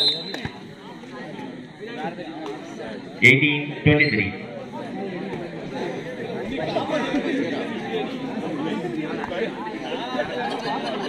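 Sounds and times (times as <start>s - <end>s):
babble of voices: 0.0s - 11.0s.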